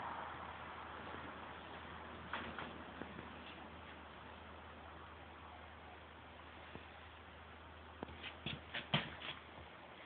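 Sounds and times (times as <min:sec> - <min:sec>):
shuffling rustles and scrapes: 0:08.0 - 0:10.0.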